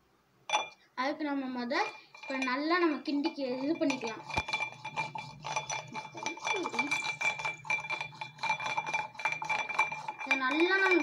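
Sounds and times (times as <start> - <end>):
stick clinking in a glass: 0.5 - 0.8, 2.1 - 11.0
glass ringing high tone: 3.6 - 11.0.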